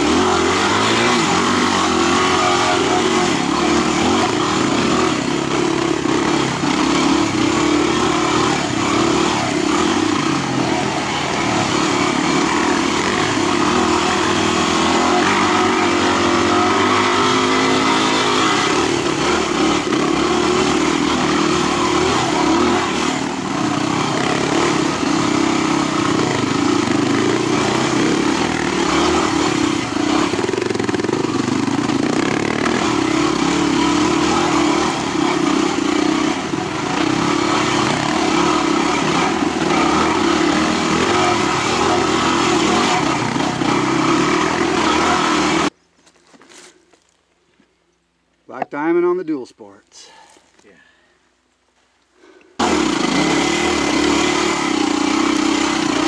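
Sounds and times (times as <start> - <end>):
motorcycle engine revving: 0.0 - 45.8, 52.6 - 56.0.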